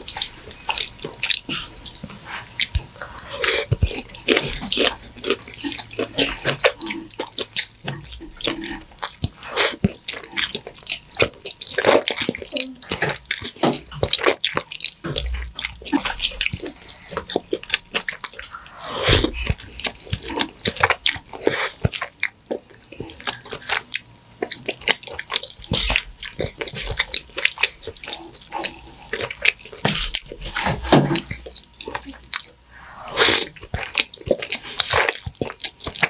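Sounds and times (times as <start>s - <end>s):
noodles slurped and chewed: 0.0s - 36.0s
sticky mouth clicks: 0.0s - 36.0s.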